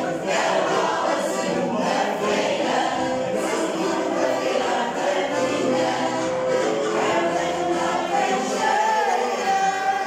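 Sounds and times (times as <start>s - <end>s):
choir singing in harmony: 0.0s - 10.0s.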